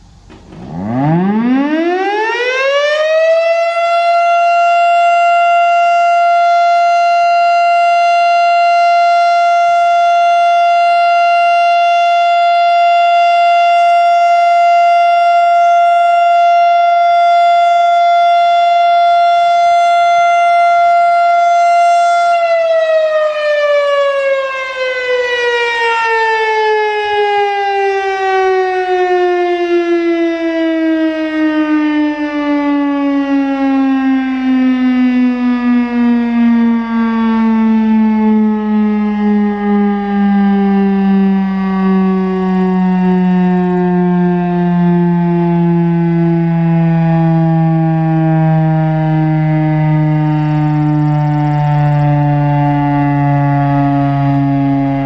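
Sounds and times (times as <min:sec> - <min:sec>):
warning siren: 0:00.0 - 0:55.0.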